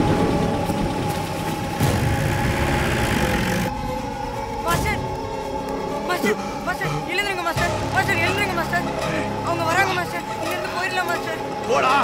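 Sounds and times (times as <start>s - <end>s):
truck engine rumbling: 0.0s - 4.0s
droning music score: 0.0s - 12.0s.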